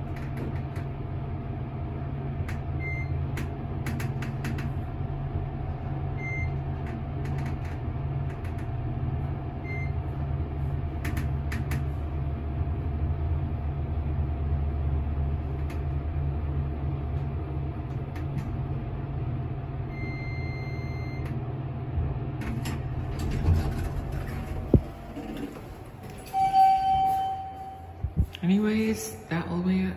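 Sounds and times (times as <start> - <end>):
elevator low rumble: 0.0 - 29.9
high beep: 26.3 - 28.2
steady tone: 26.3 - 29.9.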